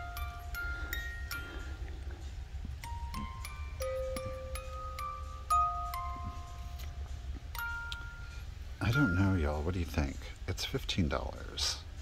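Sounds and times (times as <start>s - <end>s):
music box melody: 0.0s - 10.3s.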